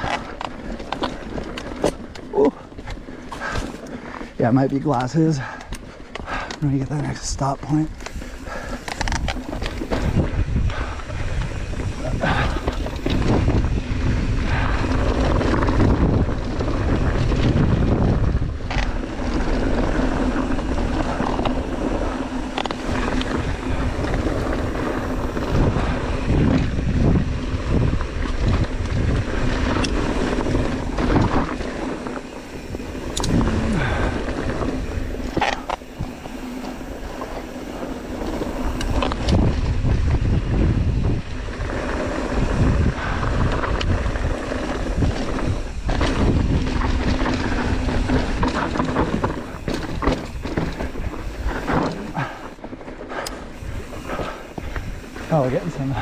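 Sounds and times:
tyres crunching on gravel: 0.0 - 10.3, 14.7 - 56.0
bike clicks and knocks: 0.0 - 56.0
wind noise on microphone: 0.0 - 56.0.

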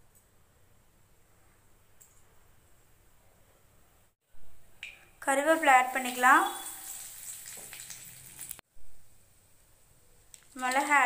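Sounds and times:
leaves sizzling in hot oil: 5.2 - 8.6, 10.4 - 11.0.

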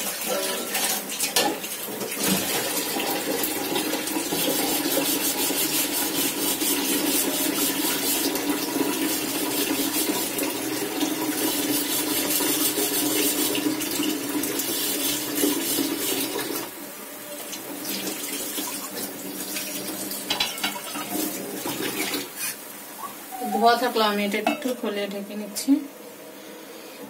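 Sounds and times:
mixture sizzling in frying pan: 0.0 - 16.8.

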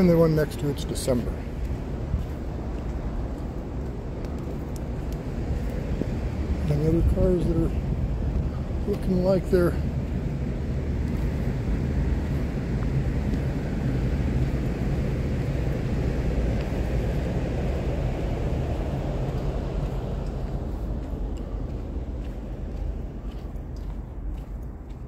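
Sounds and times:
distant engine rumble: 0.0 - 25.0.

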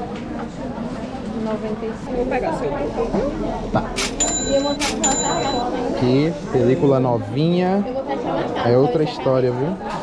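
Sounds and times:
high bell-like ringing tone: 4.1 - 5.8.

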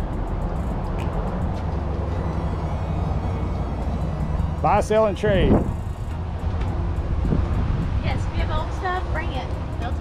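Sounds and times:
wind buffeting microphone: 1.0 - 10.0.

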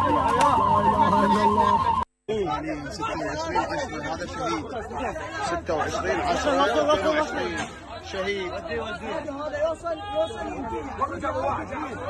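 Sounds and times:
people talking and calling out: 0.0 - 12.0.

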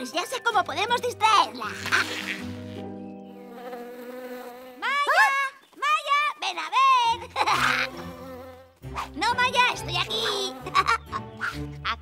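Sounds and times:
cartoon insect wings buzzing: 1.6 - 5.1, 7.4 - 8.8, 10.0 - 11.0.

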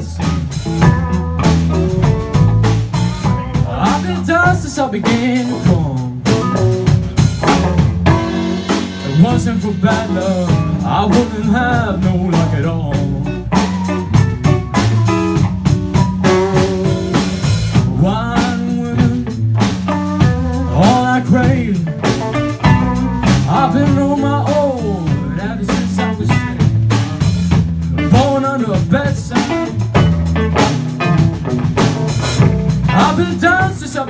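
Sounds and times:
electric guitar lead with string bends: 0.0 - 4.4, 5.2 - 33.6
bass guitar: 0.0 - 34.0
drum kit: 0.0 - 34.0.

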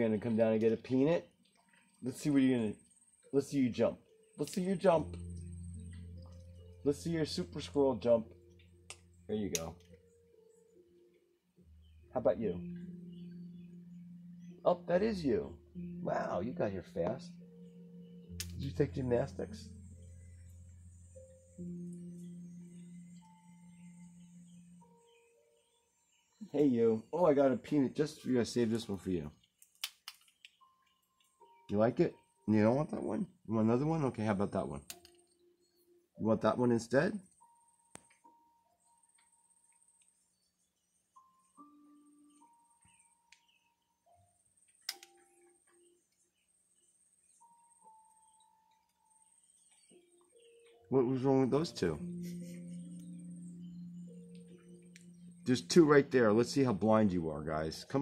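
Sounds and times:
faint music with held notes: 0.0 - 58.0
deep chime-like ringing: 11.8 - 24.9, 50.9 - 58.0
sharp click: 18.4 - 18.7, 34.9 - 35.2, 44.8 - 45.3.

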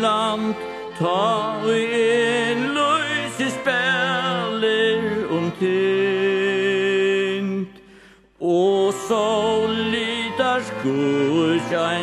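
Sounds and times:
slow song with gliding voice: 0.0 - 12.0.

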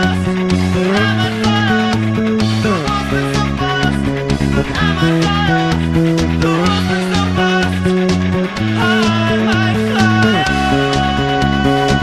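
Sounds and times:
electric bass guitar playing: 0.0 - 12.0
rock band recording: 0.0 - 12.0.

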